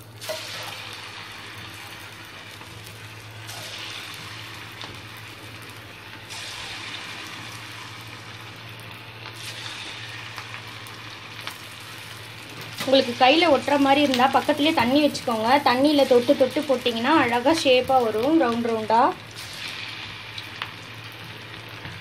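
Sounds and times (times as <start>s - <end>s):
oil sizzling while deep-frying: 0.0s - 22.0s.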